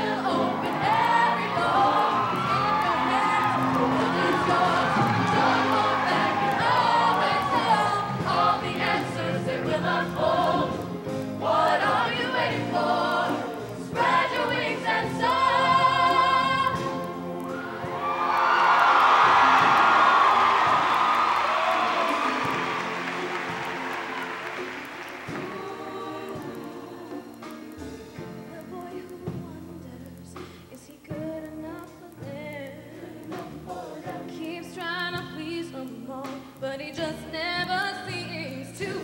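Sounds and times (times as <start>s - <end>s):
audience applause: 0.0s - 26.6s
choir singing with instruments: 0.0s - 29.4s, 32.1s - 35.3s, 36.0s - 39.0s.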